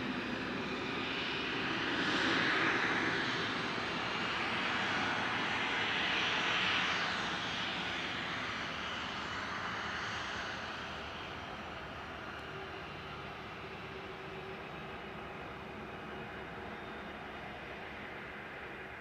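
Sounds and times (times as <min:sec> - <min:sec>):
jet engine hiss and whine: 0:00.0 - 0:19.0.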